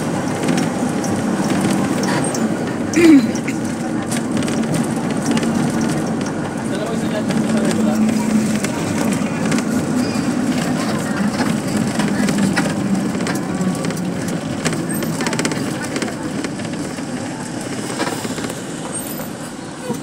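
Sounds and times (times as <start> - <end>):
vehicle engine and road drone: 0.0 - 20.0
rattles and clicks: 0.2 - 19.0.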